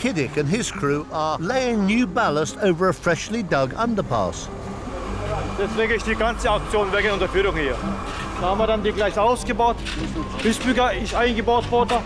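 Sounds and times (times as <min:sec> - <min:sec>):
man talking: 0:00.0 - 0:09.8.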